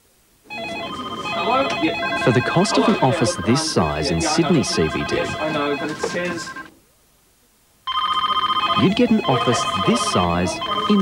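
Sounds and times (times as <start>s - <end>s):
office telephones ringing: 0.5s - 6.7s, 7.9s - 11.0s
people talking on the phone: 0.5s - 6.8s, 7.9s - 11.0s.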